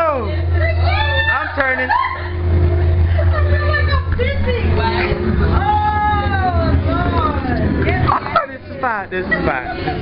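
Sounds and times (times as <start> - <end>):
people exclaiming and calling out: 0.0 - 10.0
steady low hum: 0.0 - 10.0.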